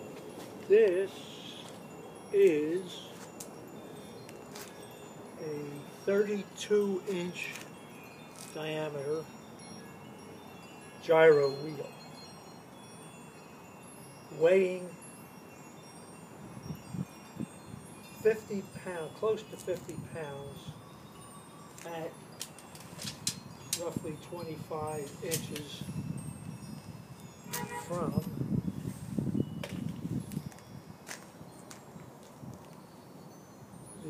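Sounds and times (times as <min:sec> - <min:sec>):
footsteps shuffling: 0:00.0 - 0:01.8, 0:03.1 - 0:03.5
faint high ringing tones: 0:00.0 - 0:30.9.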